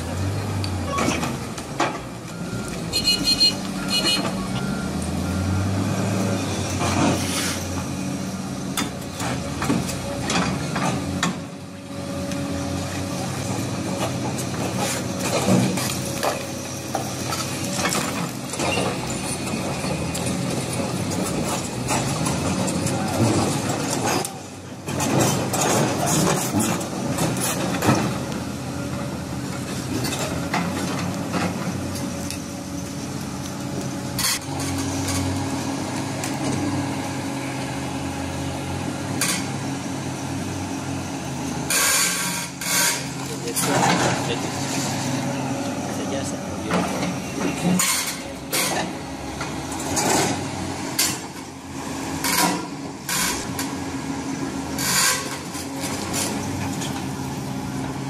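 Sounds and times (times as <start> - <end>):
heavy diesel engine running: 0.0 - 58.0
back-up alarm beeping: 2.3 - 5.6.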